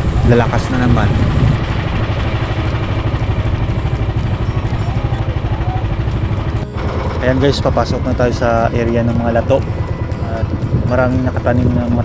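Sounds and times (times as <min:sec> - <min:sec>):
boat engine low rumble: 0:00.0 - 0:12.0
water rushing along hull: 0:00.0 - 0:12.0.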